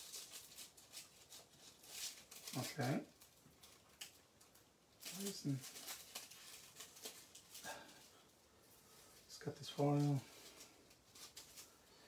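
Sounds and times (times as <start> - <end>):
scissors snipping foil: 0.0 - 7.8
foil crackling and crinkling: 0.0 - 12.0.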